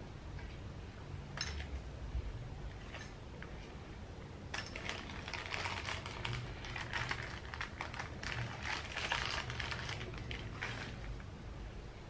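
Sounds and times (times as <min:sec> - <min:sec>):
plastic bag crinkling: 0:04.6 - 0:11.2.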